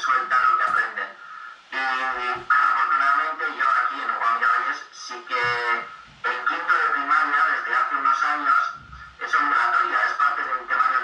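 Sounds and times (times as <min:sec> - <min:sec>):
man talking through laptop speaker: 0:00.0 - 0:11.0.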